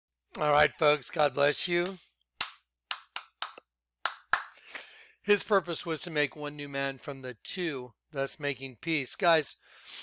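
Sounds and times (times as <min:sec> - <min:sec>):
hands clapping: 0:01.8 - 0:04.6.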